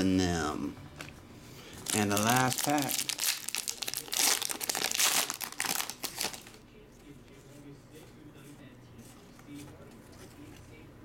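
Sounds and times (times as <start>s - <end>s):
foil wrapper tearing and crinkling: 1.8s - 6.6s.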